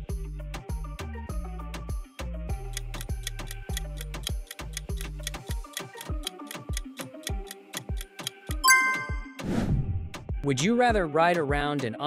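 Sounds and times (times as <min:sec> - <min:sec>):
clock-like ticking beat: 0:02.6 - 0:09.3
short melody: 0:08.6 - 0:09.4.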